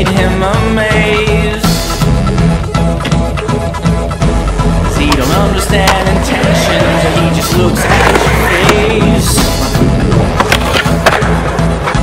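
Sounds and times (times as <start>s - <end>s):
song with steady beat: 0.0s - 10.4s
skateboard wheels rolling: 5.1s - 12.0s
skateboard pops and clacks: 10.3s - 12.0s.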